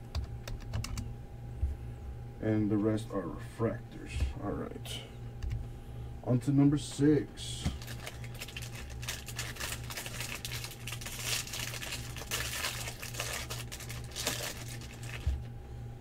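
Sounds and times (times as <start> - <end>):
steady low hum: 0.0 - 16.0
foil wrapper crinkling and tearing: 7.8 - 15.5.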